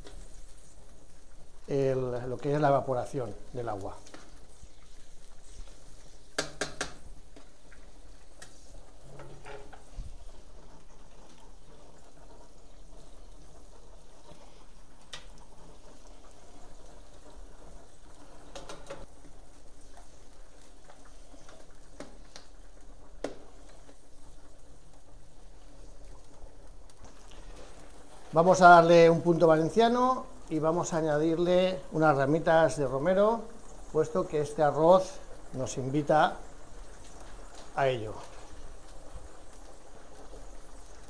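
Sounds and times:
broth boiling in a pan: 0:00.0 - 0:41.0
burning wood crackling: 0:00.0 - 0:41.0.

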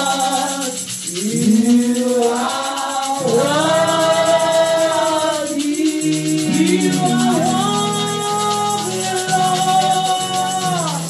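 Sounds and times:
hand shaker rattling: 0:00.0 - 0:11.0
woman singing a slow song: 0:00.0 - 0:11.0.

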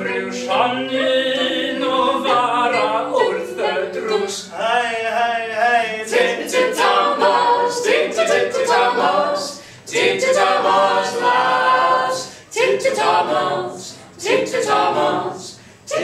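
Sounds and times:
group singing in harmony: 0:00.0 - 0:16.0.

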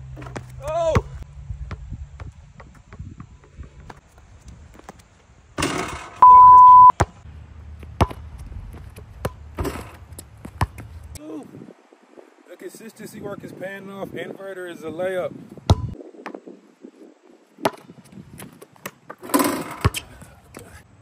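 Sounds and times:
loud steady beep tone: 0:06.2 - 0:06.9
basketball bouncing on hard court: 0:07.8 - 0:10.9, 0:15.7 - 0:16.0.

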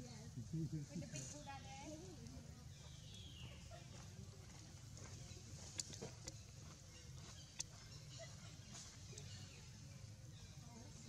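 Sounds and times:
faint outdoor background hum: 0:00.0 - 0:11.0.

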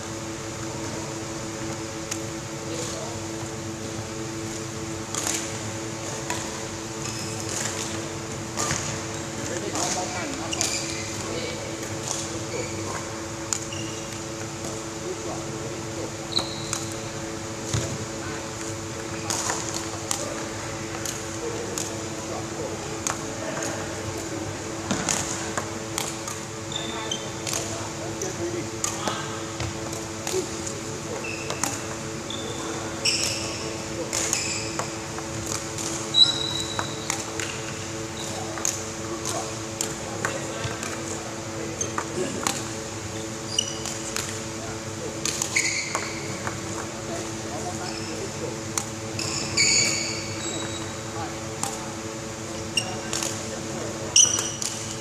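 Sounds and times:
sports hall hum: 0:00.0 - 0:55.0
shoes squeaking on wooden court: 0:04.1 - 0:14.4, 0:16.0 - 0:20.4, 0:24.9 - 0:39.6, 0:40.3 - 0:48.4, 0:49.0 - 0:51.8, 0:52.5 - 0:55.0
badminton rackets hitting shuttlecocks: 0:04.4 - 0:09.0, 0:23.0 - 0:26.6, 0:27.3 - 0:27.8, 0:33.0 - 0:41.1, 0:41.8 - 0:43.0, 0:43.6 - 0:44.6, 0:45.2 - 0:47.7, 0:48.6 - 0:50.8, 0:51.5 - 0:55.0.

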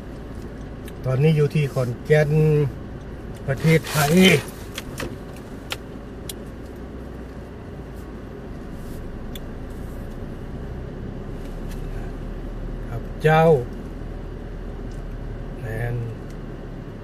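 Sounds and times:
car driving slowly from inside: 0:00.0 - 0:17.0.

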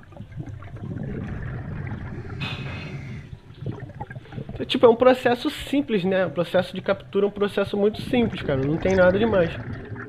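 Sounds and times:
underwater breathing bubbles: 0:00.0 - 0:04.7.

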